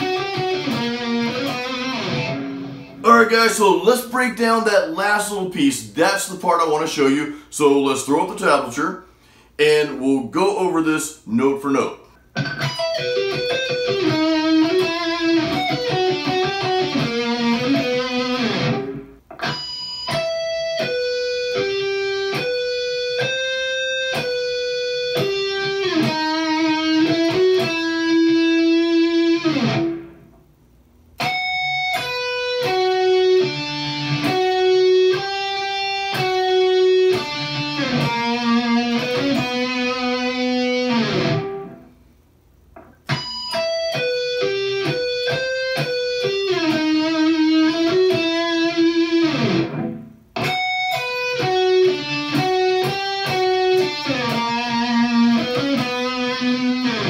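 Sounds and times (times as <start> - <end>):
electric guitar arpeggios: 0.0 - 3.5, 12.4 - 30.3, 31.2 - 41.9, 43.0 - 57.0.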